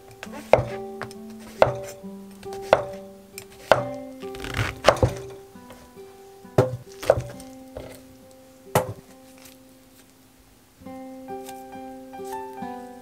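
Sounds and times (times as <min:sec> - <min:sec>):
soft background music: 0:00.0 - 0:13.0
knife slicing mushroom on board: 0:00.3 - 0:05.8, 0:06.6 - 0:08.0
knife knocking on board: 0:00.4 - 0:00.8, 0:01.5 - 0:02.0, 0:02.7 - 0:03.0, 0:04.7 - 0:05.3, 0:06.6 - 0:07.9, 0:08.8 - 0:09.0.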